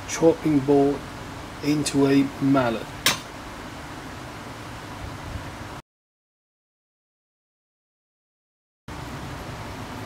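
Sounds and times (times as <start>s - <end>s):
low hiss of room noise: 0.0s - 5.8s, 8.9s - 10.0s.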